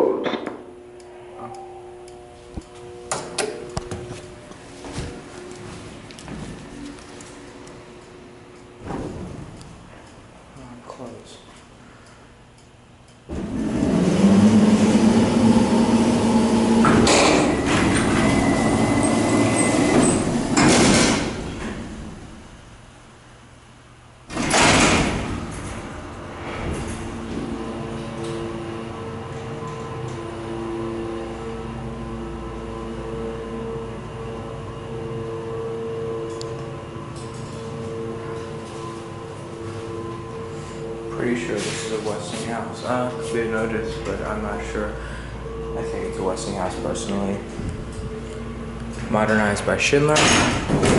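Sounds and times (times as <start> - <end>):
elevator doors closing: 0.0 - 10.6, 13.2 - 22.8, 24.2 - 50.9
hydraulic elevator hum: 0.0 - 50.9
elevator car jolt: 8.7 - 9.8, 13.3 - 22.4, 24.3 - 31.4, 50.0 - 50.9.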